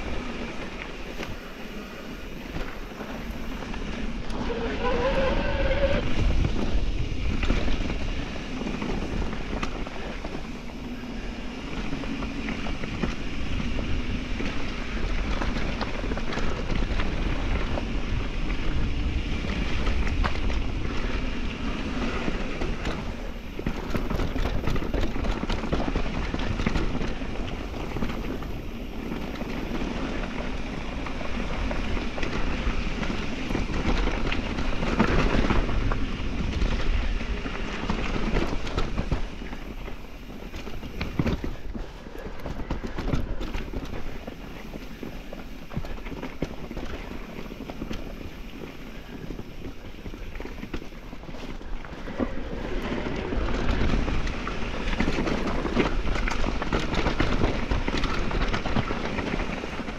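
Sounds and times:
tyre roar on dirt: 0.0 - 59.9
wind buffeting microphone: 0.0 - 59.9
wavering squeal: 4.4 - 6.2.

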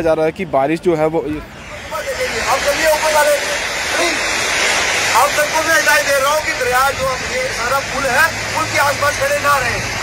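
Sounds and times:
man speaking through loudspeaker: 0.0 - 4.3, 5.1 - 10.0.

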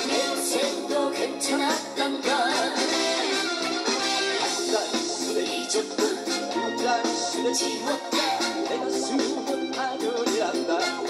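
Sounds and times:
amplified musical backing: 0.0 - 11.0
man singing into a microphone: 4.6 - 11.0.

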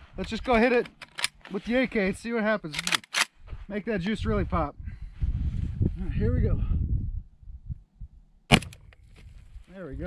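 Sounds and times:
rifle shot: 8.5 - 8.9.

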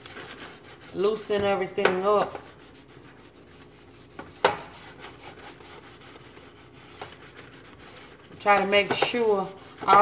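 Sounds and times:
sponge scrubbing metal pan: 0.0 - 10.0.

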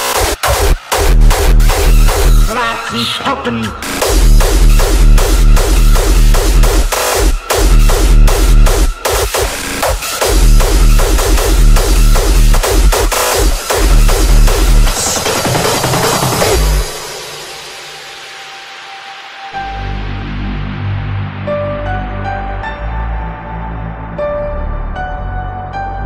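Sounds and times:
electronic dance music with heavy kicks: 0.0 - 21.5.

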